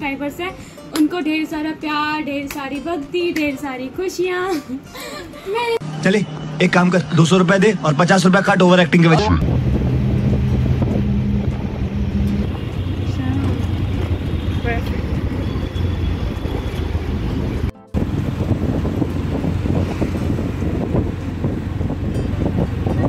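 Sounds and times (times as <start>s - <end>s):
road and wind noise: 5.6s - 23.0s
auto-rickshaw engine running: 9.4s - 23.0s.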